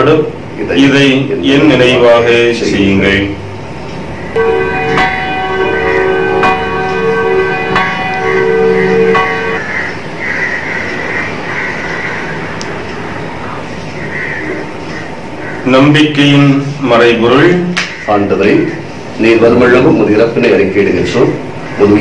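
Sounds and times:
bells ringing: 4.4s - 10.2s.

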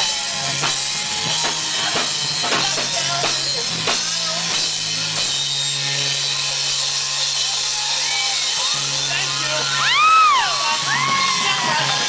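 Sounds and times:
bass guitar: 0.0s - 12.0s
drum kit and cymbals: 0.0s - 12.0s
electric guitar: 0.0s - 12.0s.

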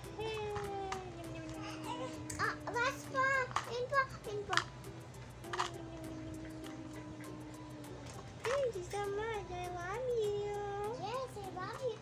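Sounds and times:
young child babbling: 0.0s - 4.3s, 5.6s - 8.3s
quiet background music: 0.0s - 12.0s
toys clicking: 0.2s - 9.0s.

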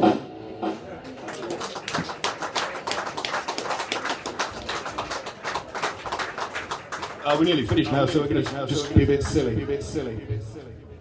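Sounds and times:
small audience applauding: 1.0s - 9.5s.

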